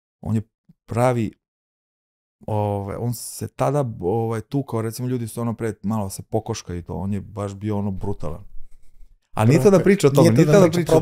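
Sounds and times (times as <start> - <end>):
man speaking: 2.5 - 8.5, 9.4 - 11.0.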